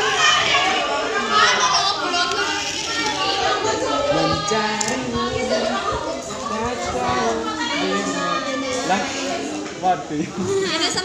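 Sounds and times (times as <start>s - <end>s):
children talking and playing: 0.0s - 11.0s.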